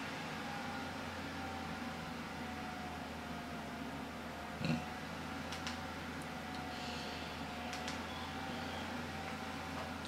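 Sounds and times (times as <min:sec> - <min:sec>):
room noise hum and hiss: 0:00.0 - 0:10.0.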